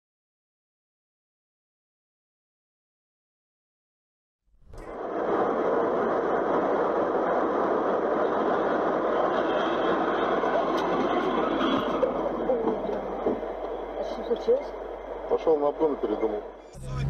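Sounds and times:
car engine drone: 4.6s - 7.6s, 9.4s - 17.0s
road and tyre noise: 4.6s - 17.0s.

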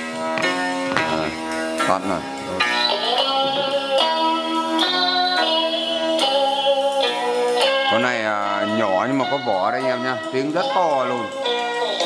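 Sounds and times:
music from radio speakers: 0.0s - 12.0s.

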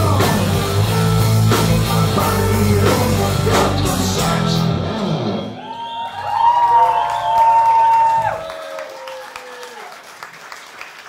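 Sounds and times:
live rock band with violin: 0.0s - 5.6s.

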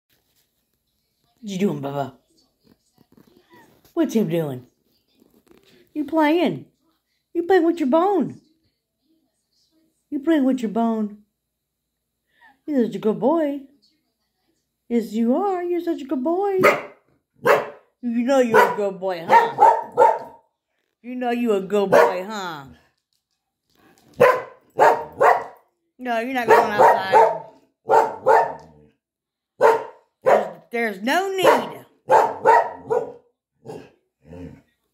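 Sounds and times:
dog barking: 16.6s - 17.9s, 18.5s - 20.4s, 21.9s - 22.3s, 24.2s - 25.6s, 26.4s - 28.9s, 29.6s - 30.7s, 31.4s - 34.0s.

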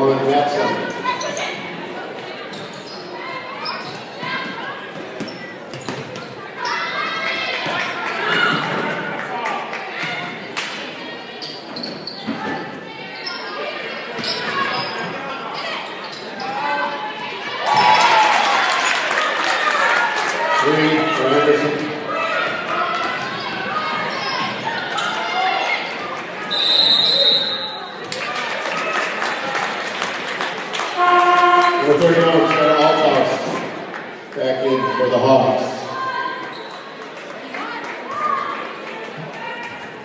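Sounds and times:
referee whistle blast: 26.5s - 27.8s.

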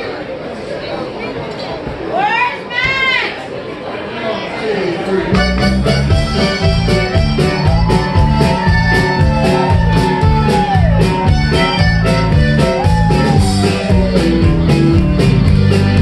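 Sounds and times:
band playing instrumental: 5.3s - 16.0s.

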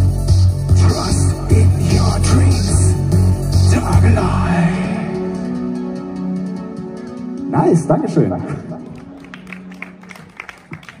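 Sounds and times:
audience clapping: 8.8s - 11.0s.

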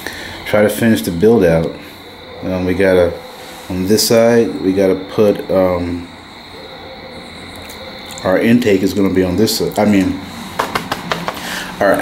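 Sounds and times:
high-pitched whine: 0.0s - 12.0s
steady background noise: 0.0s - 12.0s.

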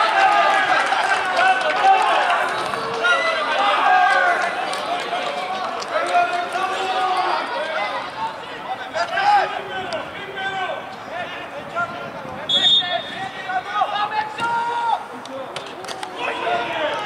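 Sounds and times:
men shouting and calling out: 5.9s - 15.5s, 16.1s - 17.0s.

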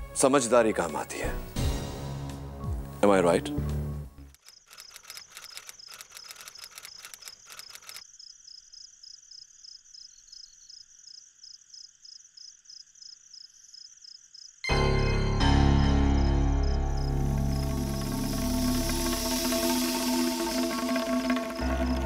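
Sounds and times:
crickets chirping: 4.4s - 14.7s, 16.6s - 22.0s.

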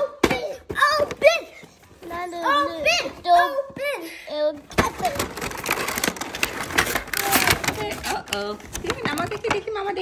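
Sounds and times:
packaging crinkling and tearing: 4.7s - 9.5s.

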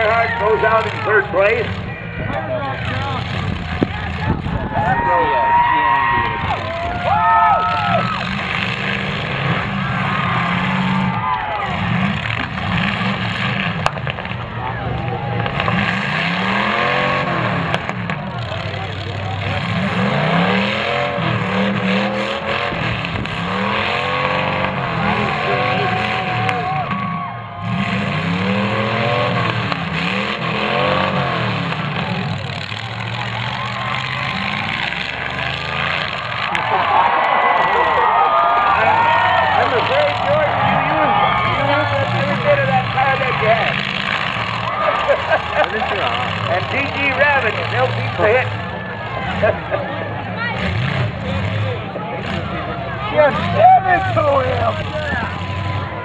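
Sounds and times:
car engines revving: 0.0s - 56.0s.

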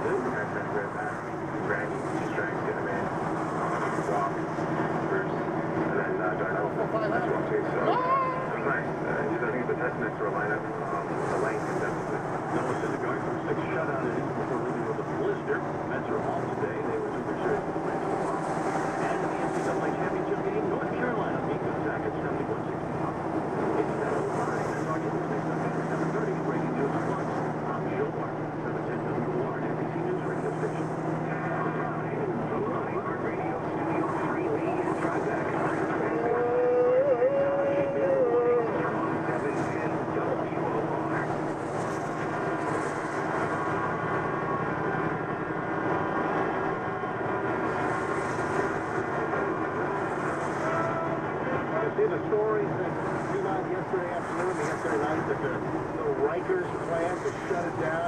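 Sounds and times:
faint radio talk: 0.0s - 58.0s
truck engine and road noise: 0.0s - 58.0s
wavering whine: 0.0s - 58.0s.

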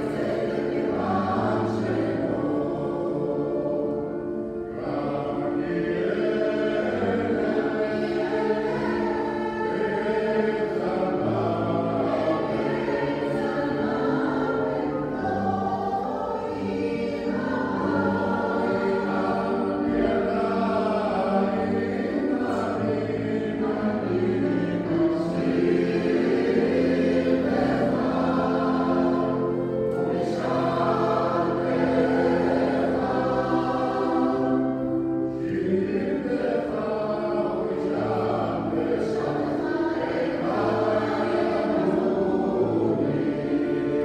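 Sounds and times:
mixed choir singing held chords: 0.0s - 44.0s.

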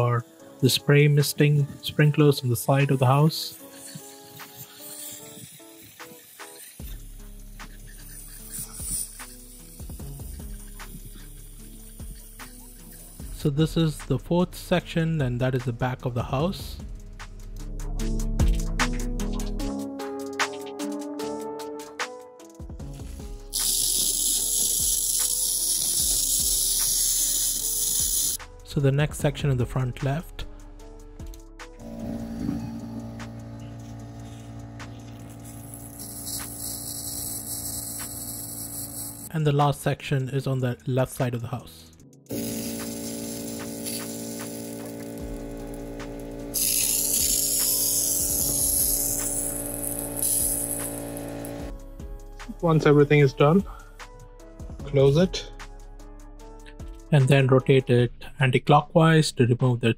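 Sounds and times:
sprinkler heads hissing air: 2.9s - 13.4s, 22.9s - 28.4s, 31.8s - 39.3s, 42.3s - 51.7s
background music with a beat: 16.4s - 32.0s, 42.0s - 57.3s.

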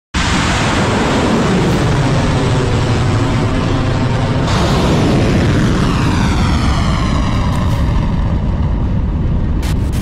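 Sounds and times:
crackling bursts: 0.2s - 10.0s
rocket motor roar: 0.2s - 10.0s.

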